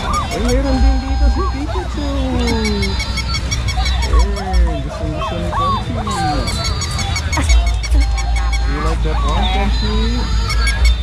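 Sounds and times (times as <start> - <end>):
overlapping voices: 0.0 - 11.0
squeaky gliding calls: 0.0 - 11.0.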